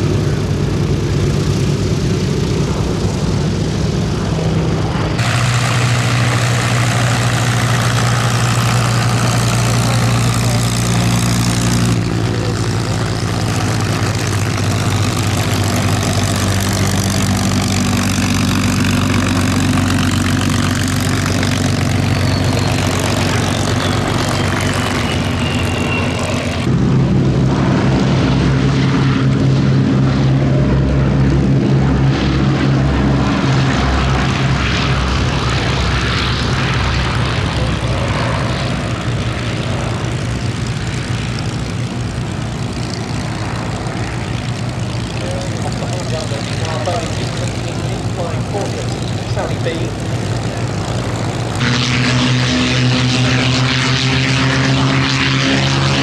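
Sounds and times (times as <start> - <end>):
propeller plane engine taxiing: 0.0 - 56.0
radial engines at take-off power: 0.0 - 56.0.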